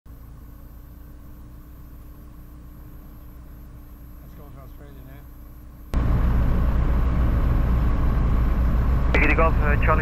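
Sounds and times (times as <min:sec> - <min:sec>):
aircraft engine idling: 0:00.1 - 0:10.0.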